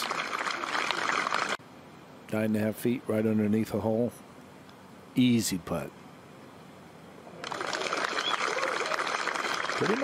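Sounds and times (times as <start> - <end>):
crowd applauding: 0.0 - 1.6, 7.4 - 10.0.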